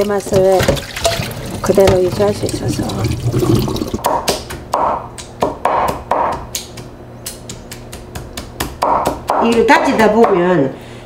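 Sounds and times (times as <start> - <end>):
knife chopping on wooden board: 4.0 - 10.4.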